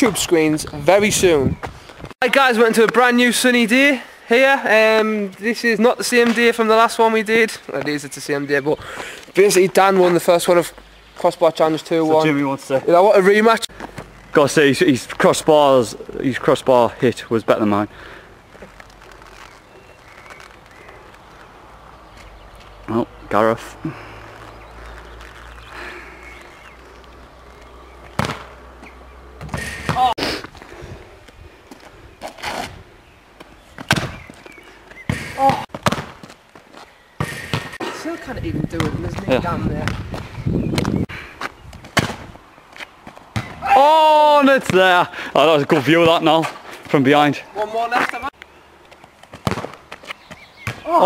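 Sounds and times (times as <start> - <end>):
football kicked on tarmac: 28.1 - 28.5, 33.8 - 34.4, 35.1 - 36.4, 38.8 - 41.0, 41.8 - 42.3, 43.3 - 43.7, 49.3 - 50.9
ball bouncing knocks: 28.1 - 28.6, 35.1 - 36.3, 49.3 - 49.8.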